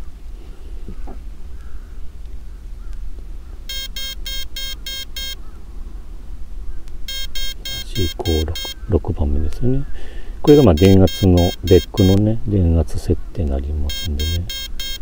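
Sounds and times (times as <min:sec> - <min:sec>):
short electronic beeps: 0:03.7 - 0:05.4, 0:07.1 - 0:08.8, 0:10.5 - 0:12.2, 0:13.9 - 0:15.0.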